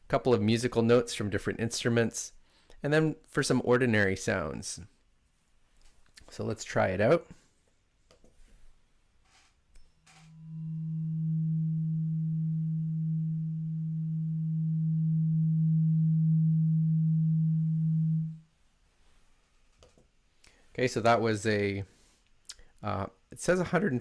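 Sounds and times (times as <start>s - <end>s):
tuning fork ringing: 9.8s - 18.4s.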